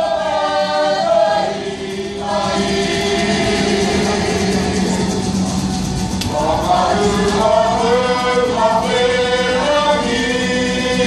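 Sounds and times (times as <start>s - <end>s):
group singing in unison: 0.0s - 5.4s, 6.2s - 11.0s.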